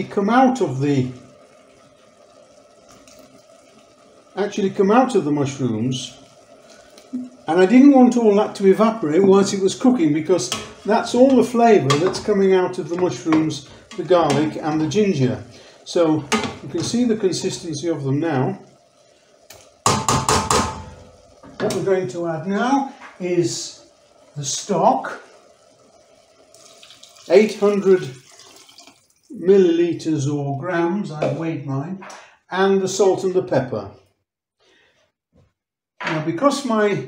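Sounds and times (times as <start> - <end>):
liquid pouring into pot: 0.0 - 29.4
wooden spoon tapping steel pot: 19.8 - 20.8.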